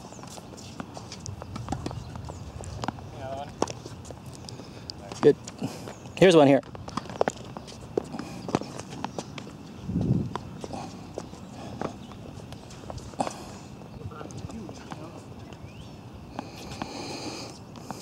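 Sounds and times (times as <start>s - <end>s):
tennis ball bouncing: 0.2s - 4.4s.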